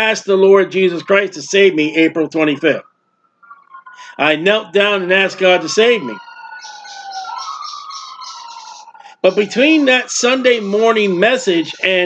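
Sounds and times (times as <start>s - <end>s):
wailing siren-like tone: 0.6s - 12.0s
fast high-pitched warble: 0.8s - 12.0s.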